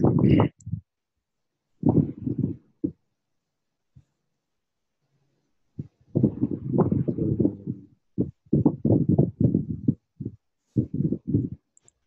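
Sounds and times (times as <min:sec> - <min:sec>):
muffled talking over voice call: 0:00.0 - 0:00.6, 0:06.8 - 0:07.9.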